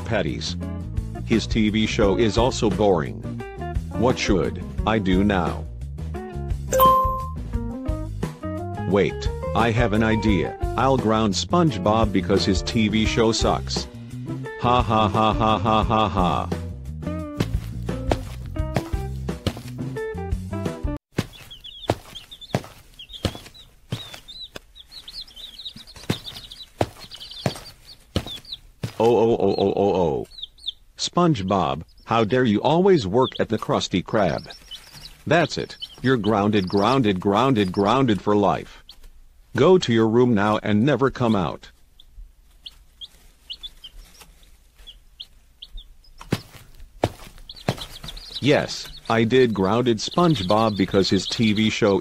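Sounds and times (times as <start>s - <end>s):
small birds chirping: 11.9s - 20.2s, 21.1s - 52.0s
cartoon footsteps: 17.3s - 20.0s, 21.1s - 30.4s, 31.6s - 39.1s, 45.7s - 52.0s.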